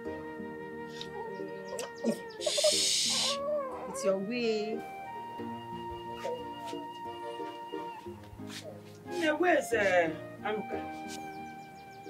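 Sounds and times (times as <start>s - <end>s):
soft background music: 0.0s - 12.0s
loud breathy hiss: 2.4s - 3.4s.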